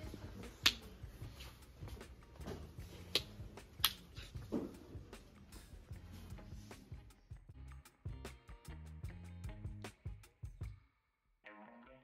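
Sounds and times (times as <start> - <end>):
sharp snap-like clicks: 3.1 - 4.0.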